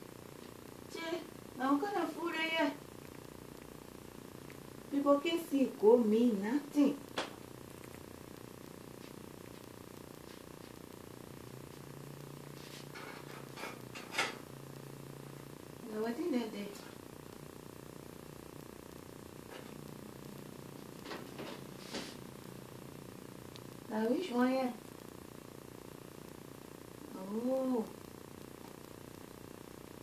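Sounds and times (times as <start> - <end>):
low appliance hum: 0.0 - 30.0.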